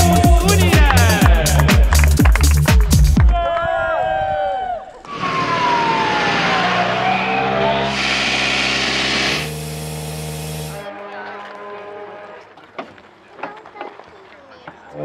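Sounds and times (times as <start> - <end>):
falling whine: 5.0 - 10.8
rally car engines running: 5.1 - 10.8.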